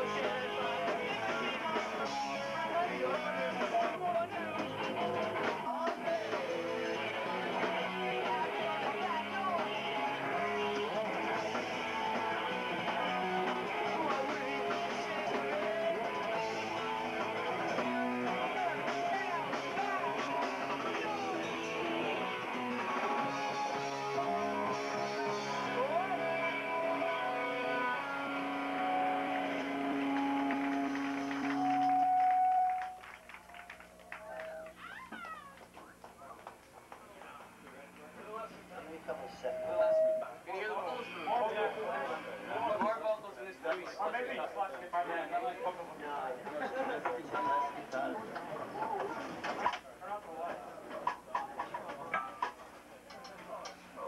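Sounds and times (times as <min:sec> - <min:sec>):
punk band playing live: 0:00.0 - 0:32.8
crowd voices: 0:00.0 - 0:33.3, 0:37.0 - 0:54.0.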